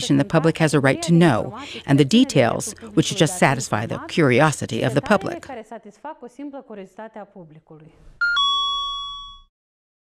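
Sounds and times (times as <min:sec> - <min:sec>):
woman speaking: 0:00.0 - 0:08.0
two-note electronic chime: 0:08.2 - 0:09.5.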